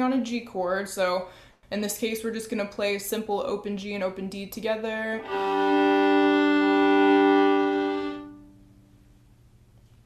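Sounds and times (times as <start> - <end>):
violin double stop chord: 5.2 - 8.6.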